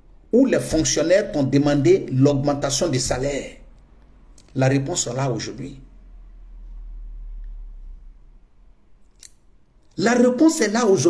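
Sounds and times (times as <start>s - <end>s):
person speaking: 0.3s - 6.0s, 9.2s - 11.0s.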